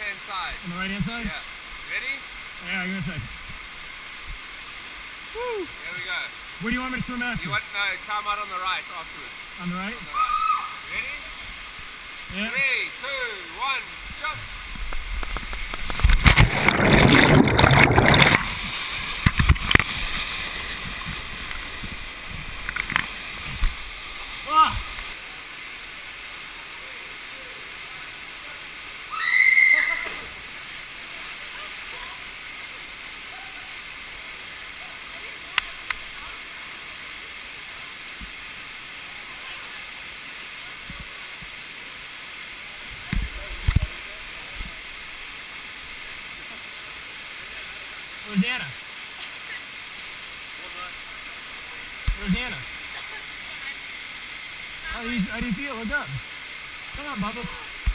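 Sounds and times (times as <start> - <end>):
waterfall rushing: 0.0 - 57.9
high-pitched cry: 10.1 - 10.8, 29.1 - 30.1
water churning and bubbling: 14.4 - 25.4.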